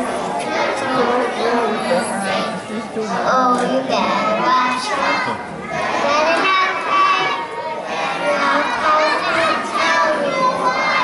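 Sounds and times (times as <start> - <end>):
young children's voices: 0.0 - 11.0.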